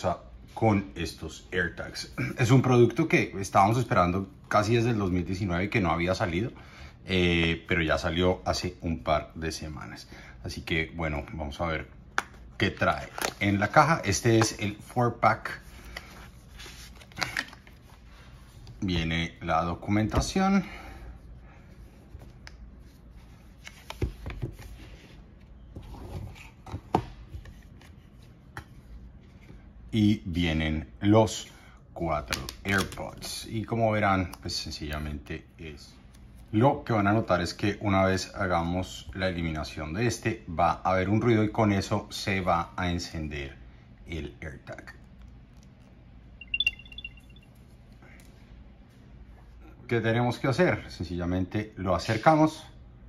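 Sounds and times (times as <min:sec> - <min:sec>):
electronic power-on chime: 0:46.4 - 0:47.5.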